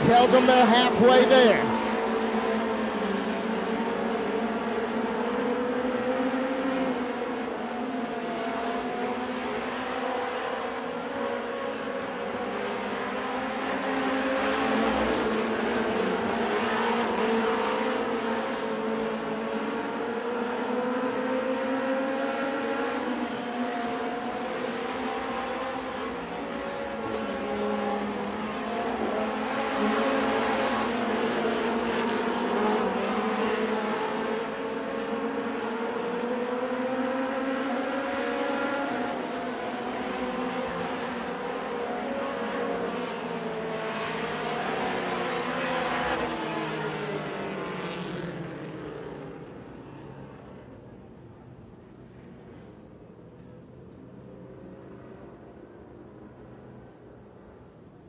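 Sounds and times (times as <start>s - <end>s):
race car engines at high revs: 0.0s - 52.6s.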